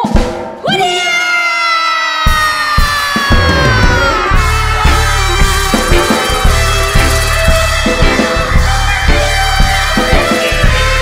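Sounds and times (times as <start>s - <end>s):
drum hits: 2.4s - 11.0s.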